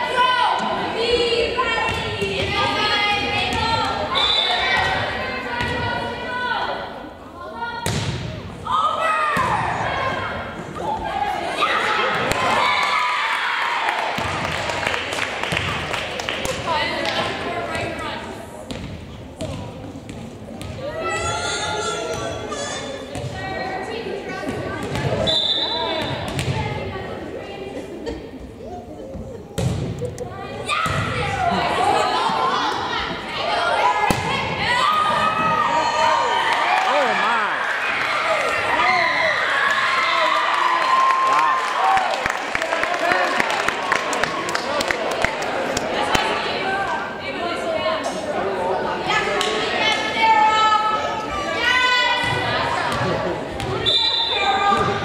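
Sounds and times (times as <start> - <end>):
crowd chatter: 0.0 - 55.0
voices echoing in gym: 0.0 - 55.0
referee's whistle blast: 25.2 - 26.2
ball bouncing on gym floor: 26.3 - 26.6.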